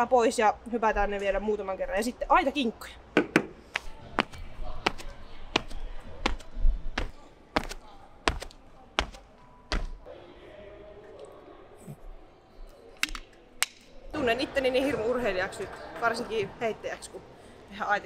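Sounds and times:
feet thudding on rubber track: 3.8s - 10.1s.

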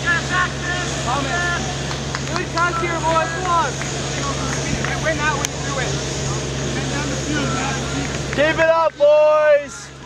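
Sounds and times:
distant players shouting: 0.0s - 10.0s
low hum: 0.0s - 10.0s.

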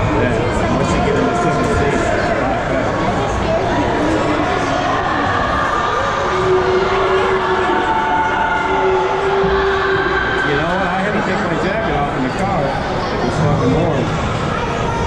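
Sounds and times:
indistinct chatter of voices: 0.0s - 15.0s.

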